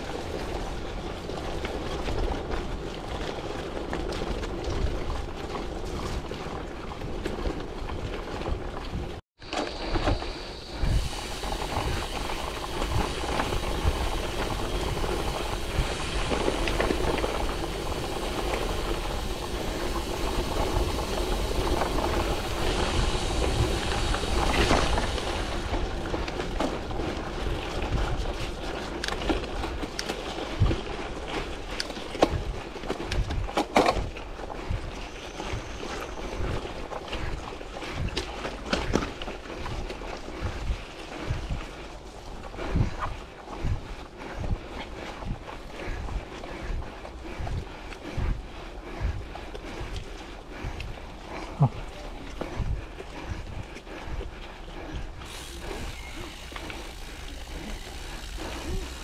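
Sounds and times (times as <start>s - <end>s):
bike knocking and rattling: 0.0s - 50.2s, 55.1s - 59.0s
wind noise on microphone: 0.0s - 59.0s
tyres rumbling on gravel: 9.4s - 37.3s, 55.1s - 59.0s.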